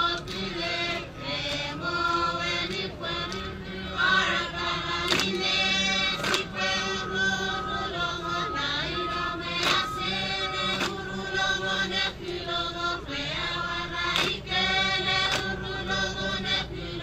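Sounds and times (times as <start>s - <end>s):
group chanting in unison: 0.0s - 17.0s
group hand claps: 0.1s - 0.5s, 4.9s - 6.8s, 9.0s - 11.2s, 14.0s - 15.8s.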